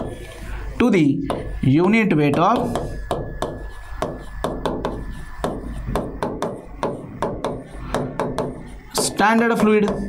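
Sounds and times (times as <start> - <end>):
pen tapping on glass: 1.3 - 10.0.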